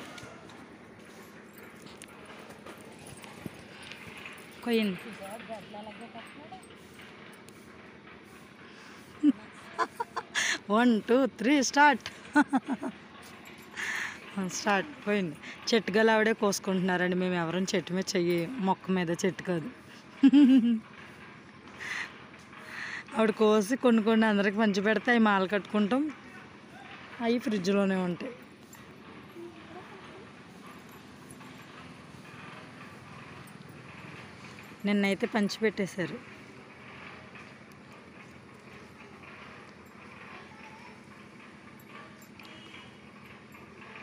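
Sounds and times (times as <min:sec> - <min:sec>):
faint outdoor background noise: 0:00.0 - 0:44.0.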